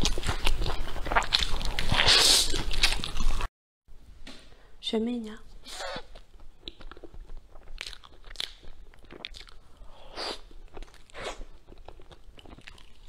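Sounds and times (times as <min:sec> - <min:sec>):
chewing soft bun: 0:00.0 - 0:03.5, 0:05.8 - 0:13.0.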